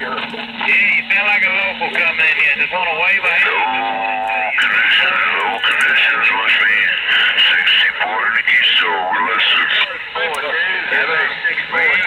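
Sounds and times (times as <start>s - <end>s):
garbled voices over radio: 0.0s - 12.0s
radio static: 0.0s - 12.0s.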